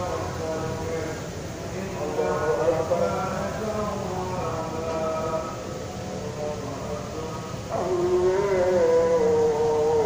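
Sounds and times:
man chanting prayer: 0.0s - 10.0s.

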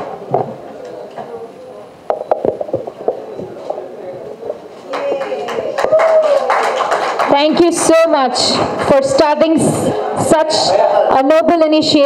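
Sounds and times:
background chatter: 0.0s - 12.0s
hand claps: 4.8s - 8.9s.

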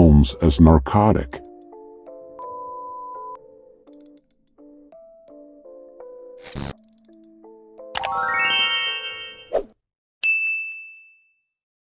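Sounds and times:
notification bell ding: 10.2s - 11.5s.

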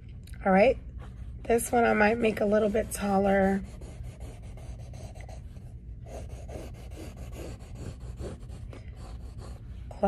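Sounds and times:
pencil sketching on paper: 1.5s - 10.0s.

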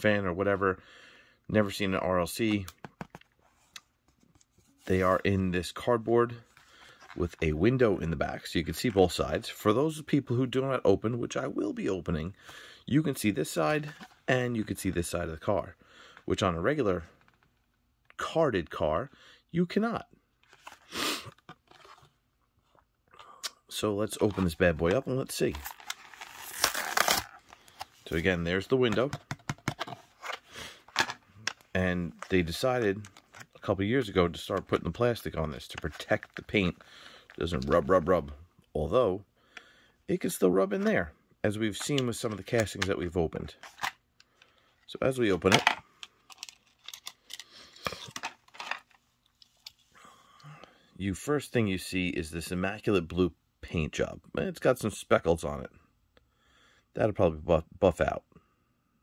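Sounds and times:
faint clicks and taps: 2.6s - 4.6s
plastic blister pack crinkling: 24.1s - 33.7s, 45.5s - 49.7s
plastic film crinkling: 25.3s - 28.3s.

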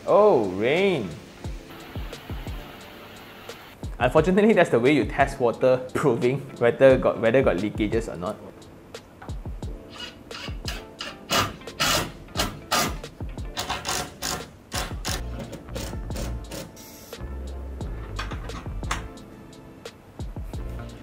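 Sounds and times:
background music: 0.0s - 21.0s
impact driver driving screws into wood: 9.9s - 13.0s, 13.6s - 15.2s.

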